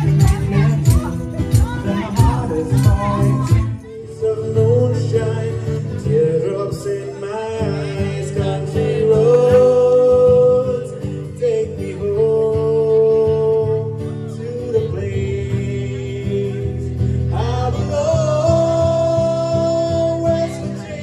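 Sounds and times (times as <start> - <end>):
man singing: 0.0 - 21.0
strummed acoustic guitar: 0.0 - 21.0.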